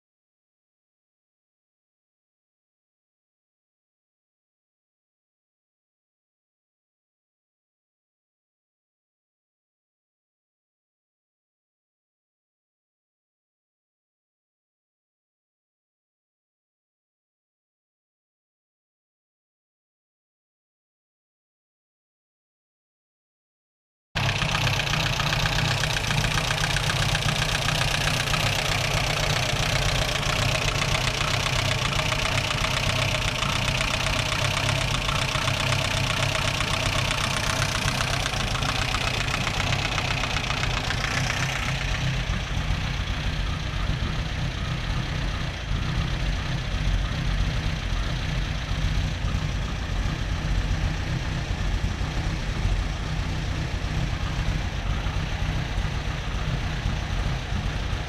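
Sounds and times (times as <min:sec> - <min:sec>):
car engine idling: 0:24.2 - 0:58.0.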